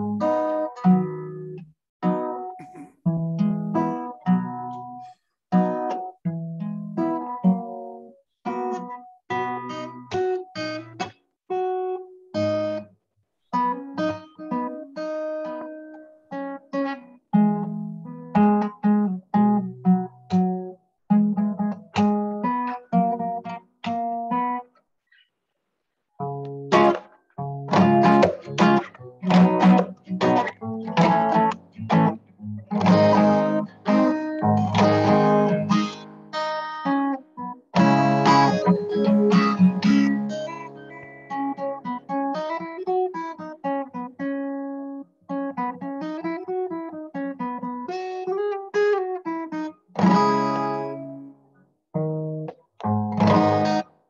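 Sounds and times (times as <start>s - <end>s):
acoustic guitar playing: 0.0s - 12.9s, 13.5s - 24.7s, 26.2s - 54.0s.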